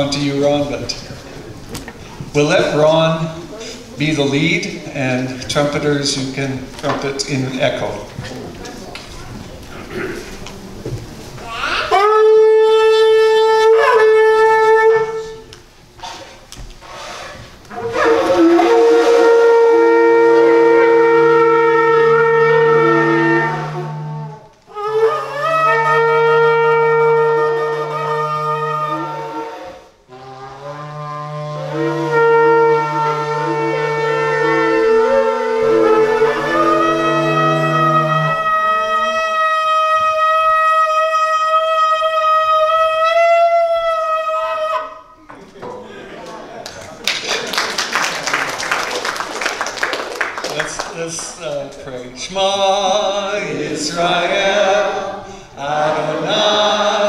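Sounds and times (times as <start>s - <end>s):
shofars blowing long blasts: 11.5s - 45.2s
single shofar wavering note: 11.9s - 15.5s, 17.7s - 45.2s.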